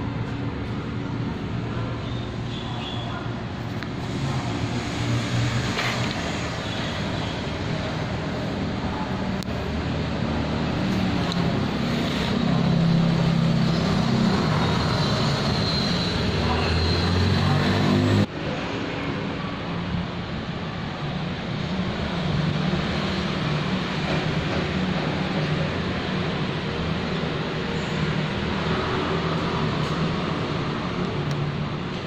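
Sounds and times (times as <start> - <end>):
street traffic noise: 0.0 - 32.0.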